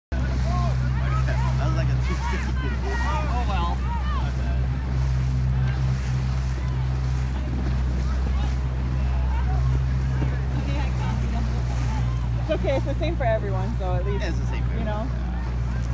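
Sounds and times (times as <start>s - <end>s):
motorboat engine drone: 0.1s - 15.9s
water rushing past hull: 0.1s - 15.9s
distant shouts: 0.2s - 12.5s, 15.1s - 15.9s
wind on microphone: 1.4s - 14.0s.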